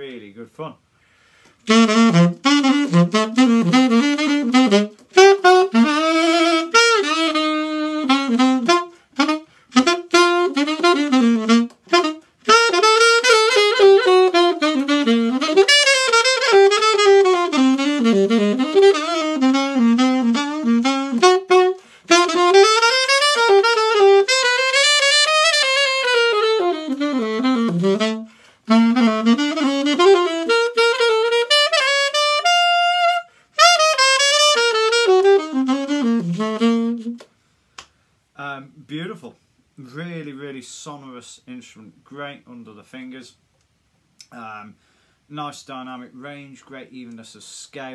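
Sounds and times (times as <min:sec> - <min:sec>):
alto saxophone jazz solo: 0:01.0 - 0:37.4.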